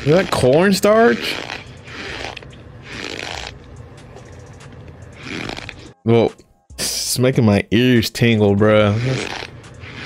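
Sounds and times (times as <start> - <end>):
metal spoon crunching cornstarch: 0.0 - 3.6.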